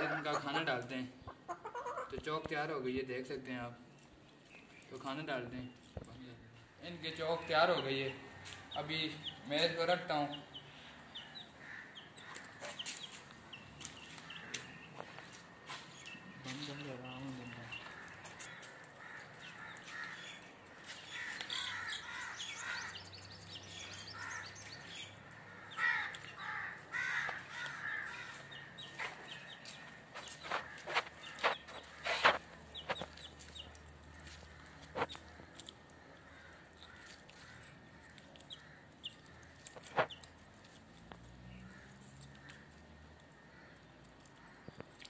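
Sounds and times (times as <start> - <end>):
chicks peeping: 0.0 - 2.4, 7.2 - 18.5, 20.8 - 35.8, 38.1 - 40.8
hens clucking: 0.0 - 2.5.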